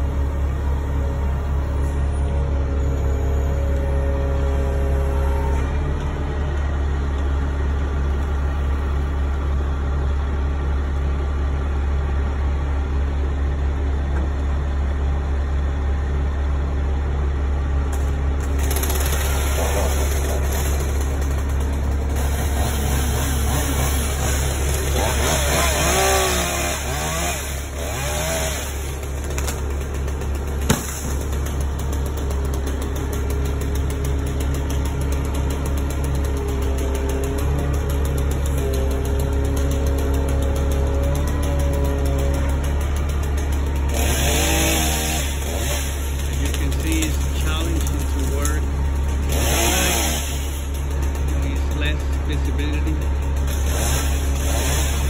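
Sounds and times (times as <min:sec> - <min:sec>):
truck engine droning: 0:00.0 - 0:55.0.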